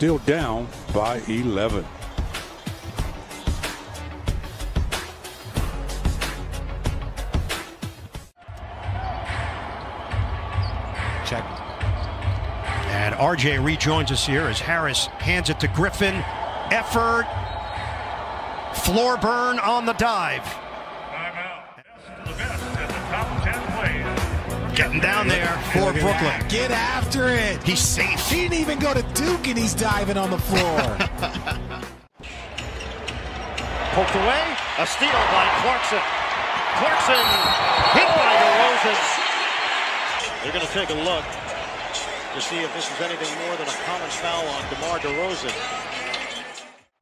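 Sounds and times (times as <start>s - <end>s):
arena crowd noise: 0.0s - 4.2s, 8.4s - 47.0s
background music with a beat: 0.1s - 13.0s, 22.3s - 33.7s.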